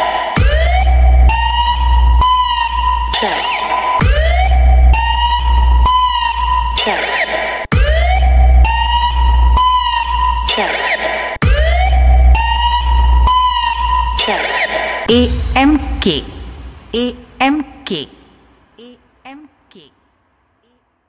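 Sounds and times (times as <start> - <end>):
electronic music with deep bass: 0.0 - 16.5.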